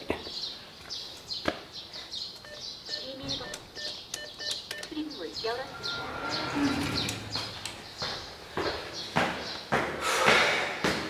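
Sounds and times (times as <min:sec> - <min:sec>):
small birds chirping: 0:00.0 - 0:09.7.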